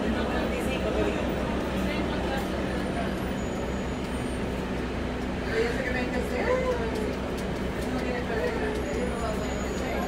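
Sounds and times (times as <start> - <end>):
bus engine drone: 0.0 - 10.0
road noise: 0.0 - 10.0.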